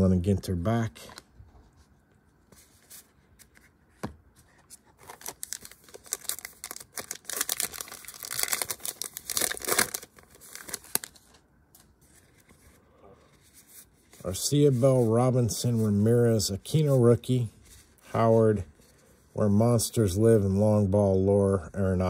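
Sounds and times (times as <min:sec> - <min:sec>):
plastic wrapper tearing and crinkling: 0:05.0 - 0:11.4.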